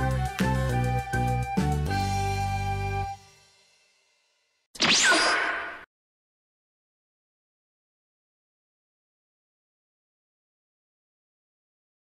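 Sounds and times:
whoosh sound effect: 4.8 - 5.9.

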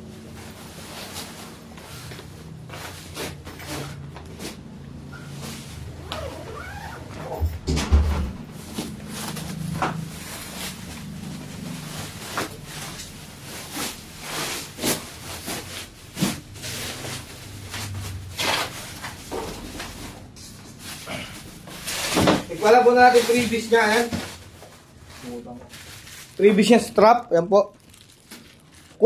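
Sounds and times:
bubble wrap crinkling: 8.6 - 20.2, 20.8 - 29.0.

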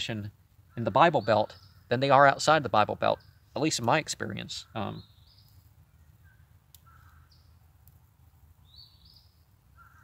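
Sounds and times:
faint bird calls: 0.6 - 2.2, 4.4 - 7.7, 8.6 - 10.0.

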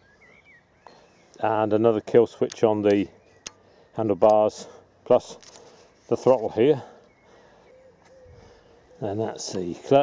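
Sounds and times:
distant bird calls: 0.0 - 10.0.

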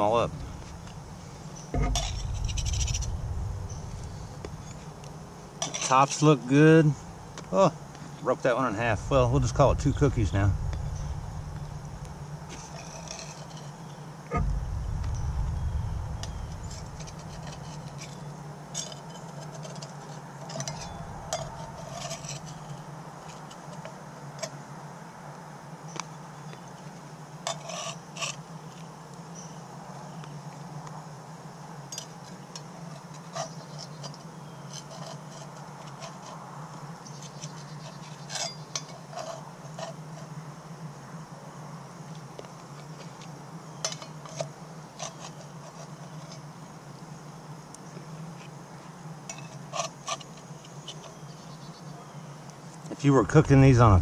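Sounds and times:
steady low hum: 0.0 - 19.0, 20.3 - 23.2, 52.9 - 54.0
low rumble: 0.3 - 5.6, 8.8 - 13.4, 14.3 - 18.2, 20.7 - 21.9, 53.2 - 54.0
metal spatula scraping cast iron: 1.8 - 4.9, 5.6 - 6.0, 10.7 - 18.2, 20.5 - 22.8.

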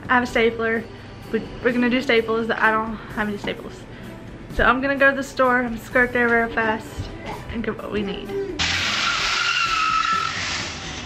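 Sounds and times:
tyre hiss on wet asphalt: 8.6 - 11.0
car tyres squealing: 8.7 - 11.0.

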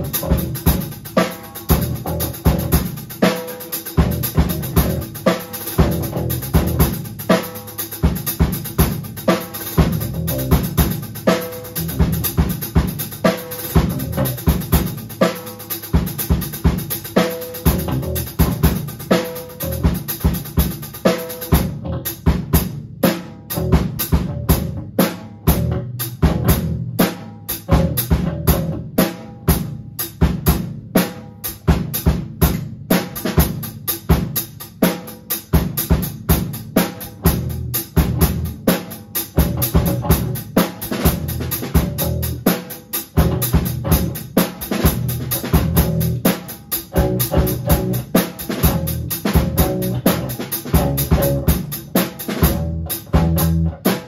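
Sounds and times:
bass guitar: 0.0 - 15.3, 15.9 - 31.0, 35.5 - 54.0
drum kit beat: 0.0 - 54.0.

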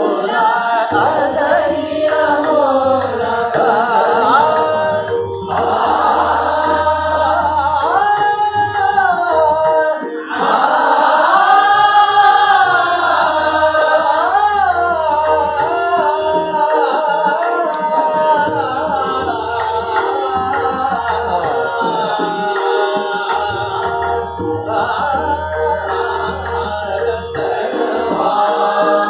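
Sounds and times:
students singing together: 0.0 - 8.9, 10.0 - 29.0
tanpura drone: 0.0 - 29.0
teacher singing: 0.0 - 29.0.

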